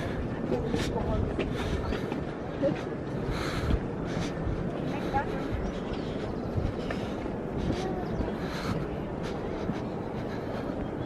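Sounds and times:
distant voices: 0.0 - 11.0
outdoor background rumble: 0.0 - 11.0.

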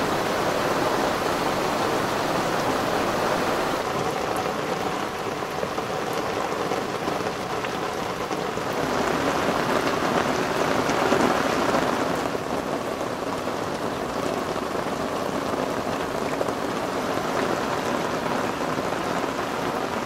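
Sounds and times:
rain falling on water and boat: 0.0 - 20.0.

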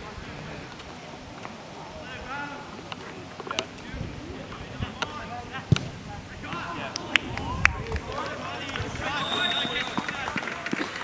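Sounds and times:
ball being kicked: 5.7 - 6.0
players shouting: 6.4 - 10.8
referee's whistle blast: 9.0 - 10.3.

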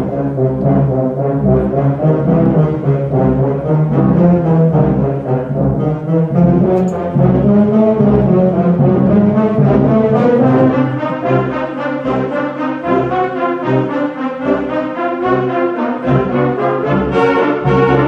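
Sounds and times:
concert wind band playing: 0.0 - 18.0.

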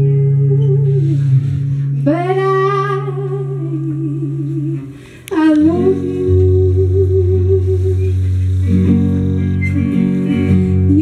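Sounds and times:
woman singing with vibrato: 0.0 - 8.8, 10.7 - 11.0
acoustic guitar notes: 0.0 - 11.0
woman breathing in: 4.9 - 5.3.

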